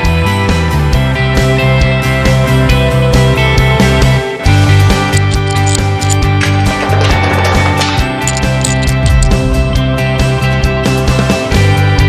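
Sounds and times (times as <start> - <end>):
upbeat rock music: 0.0 - 12.0.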